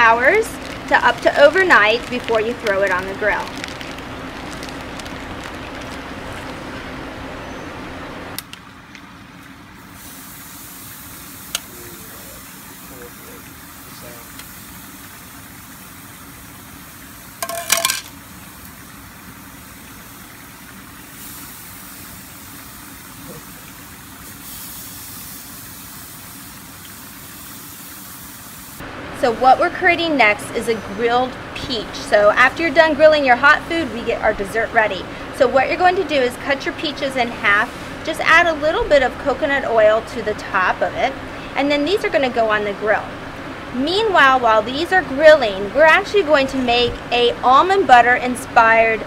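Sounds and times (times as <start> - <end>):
meat sizzling on a grill: 9.8 - 17.5, 18.2 - 28.8.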